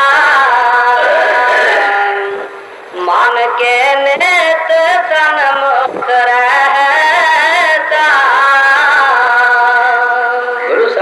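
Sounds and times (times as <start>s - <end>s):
person singing a hymn: 0.0s - 11.0s.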